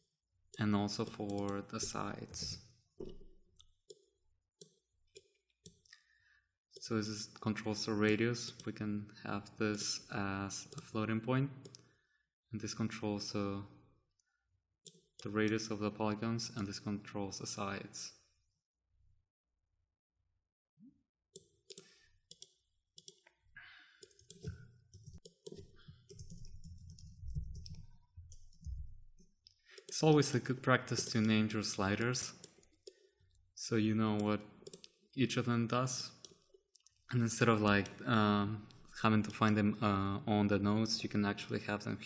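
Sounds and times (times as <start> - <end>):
mouse and keyboard clicks: 24.0 - 27.8, 29.8 - 33.0.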